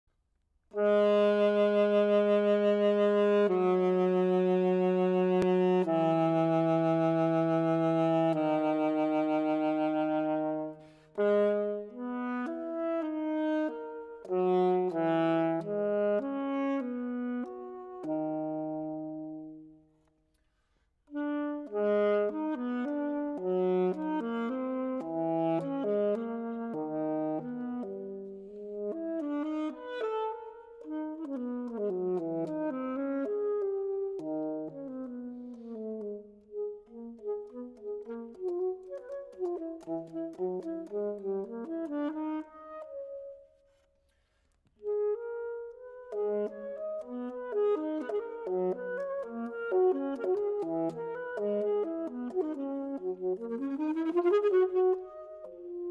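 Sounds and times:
alto saxophone playing: 0.7 - 43.9, 44.6 - 55.9.

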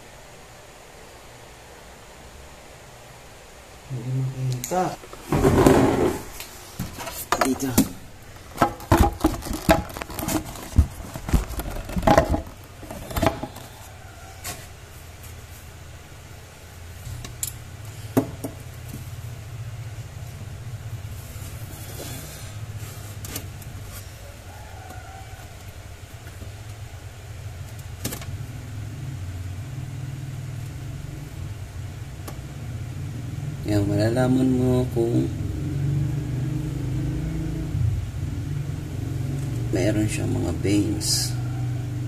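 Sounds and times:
low mechanical hum: 0.0 - 42.0
low motor hum: 25.6 - 42.0.

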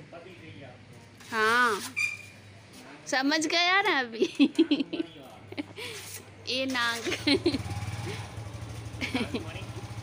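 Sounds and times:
motorcycle engine idling: 7.2 - 10.0.

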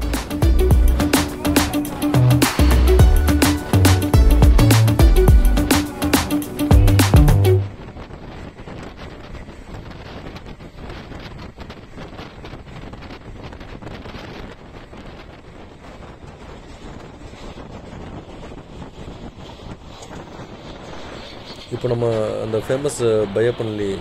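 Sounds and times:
wind rushing over microphone: 0.0 - 24.0
train running on track: 7.7 - 24.0.

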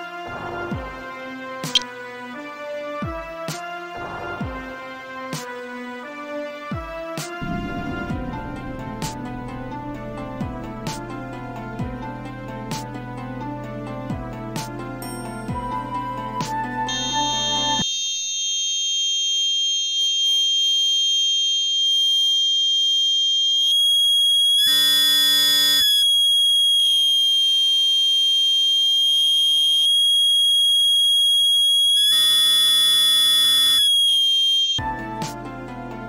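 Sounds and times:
electronic buzzer high-pitched tone: 16.8 - 34.8.

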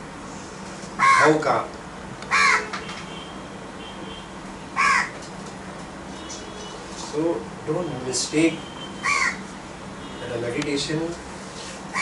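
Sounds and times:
crow cawing: 1.0 - 1.3, 2.3 - 2.8, 4.8 - 5.2, 9.0 - 9.4.

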